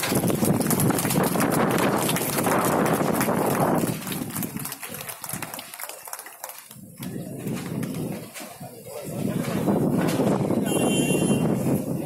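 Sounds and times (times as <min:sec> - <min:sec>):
gusty wind on microphone: 0:00.0 - 0:05.6, 0:06.8 - 0:12.0
cloth flag flapping: 0:00.0 - 0:08.4.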